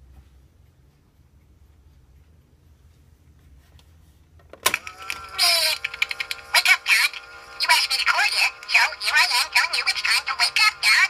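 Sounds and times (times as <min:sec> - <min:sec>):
tinny recorded voice: 0:06.6 - 0:11.0.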